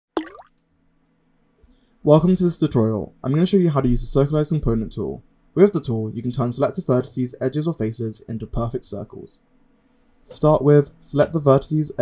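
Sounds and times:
synthetic rising plop: 0.2 - 0.5
faint low hum: 0.2 - 12.0.

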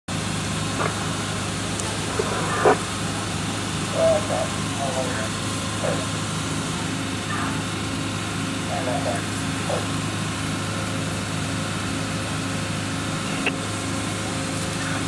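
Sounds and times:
engine idling hum: 0.1 - 15.0
distant voices: 0.2 - 15.0.

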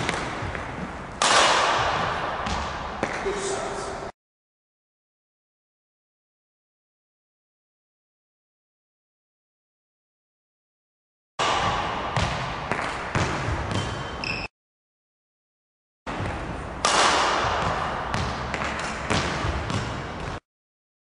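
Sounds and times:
racket hitting shuttlecock: 0.0 - 3.4, 11.4 - 14.5, 16.1 - 20.4
shoe squeaks on floor: 13.7 - 14.5.

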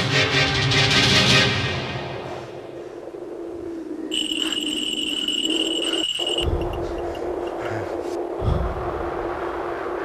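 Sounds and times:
low steady drone: 1.4 - 10.0
low rumble: 2.0 - 10.0
shrill electronic tone: 4.1 - 6.5.

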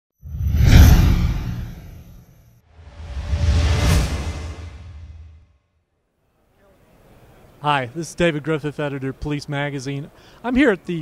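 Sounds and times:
whoosh with deep rumble: 0.2 - 5.5.

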